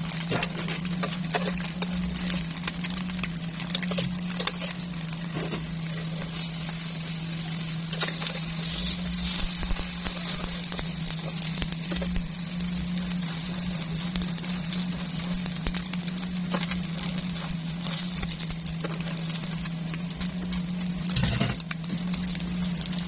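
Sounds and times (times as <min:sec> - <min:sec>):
omelette sizzling in frying pan: 0:00.0 - 0:23.0
steady low hum: 0:00.0 - 0:23.0.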